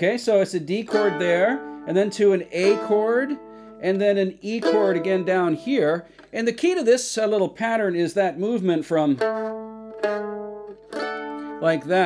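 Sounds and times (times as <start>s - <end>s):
mandolin plucked: 0.0s - 7.5s, 8.4s - 12.0s.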